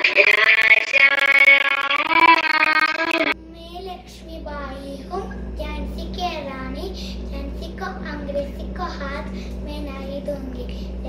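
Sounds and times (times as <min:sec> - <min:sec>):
steady low hum: 0:00.0 - 0:11.0
young girl speaking sing-song: 0:03.4 - 0:11.0.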